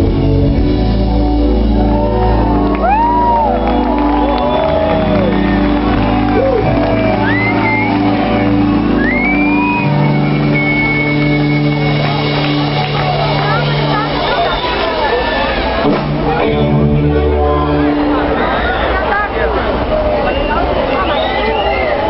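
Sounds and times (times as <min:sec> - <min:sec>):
rock band holding a chord: 0:00.0 - 0:18.6
audience shouting and whooping: 0:01.5 - 0:22.0
long high whistle: 0:08.9 - 0:11.8.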